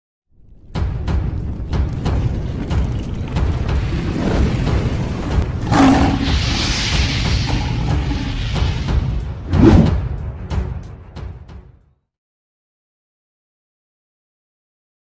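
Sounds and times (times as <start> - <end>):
dramatic intro music: 0.5 - 11.9
deep booming hits: 5.2 - 10.5
rushing hissing sweep: 5.4 - 10.1.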